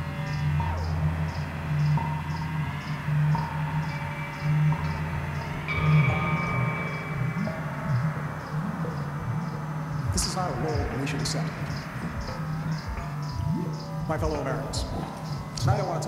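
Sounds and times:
ambient electronic music: 0.0s - 16.0s
soft high ticks: 14.9s - 15.8s.

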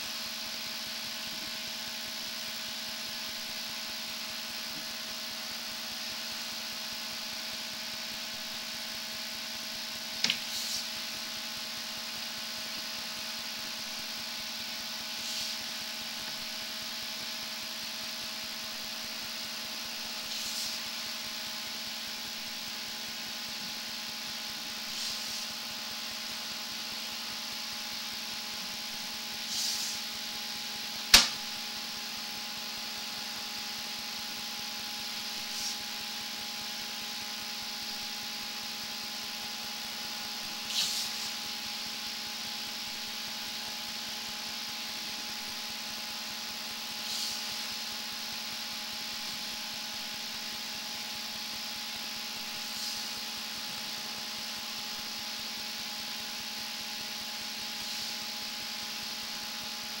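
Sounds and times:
machine hum: 0.0s - 60.0s
sharp click: 31.1s - 31.4s
constant hiss: 52.4s - 54.0s, 57.7s - 58.6s.

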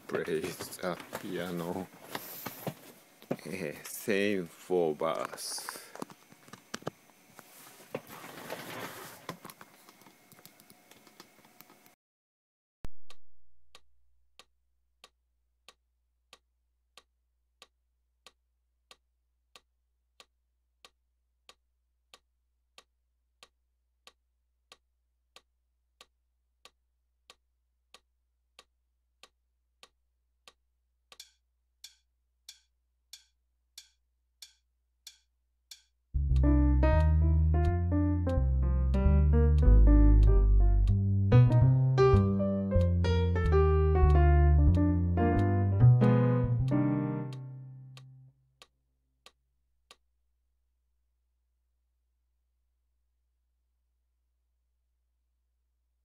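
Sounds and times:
rustling handling noise: 0.0s - 3.0s, 7.4s - 10.0s
metronome ticking: 31.1s - 48.7s.

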